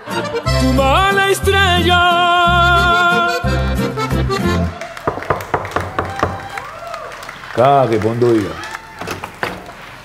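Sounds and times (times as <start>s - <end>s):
sharp percussive taps: 5.0s - 6.5s.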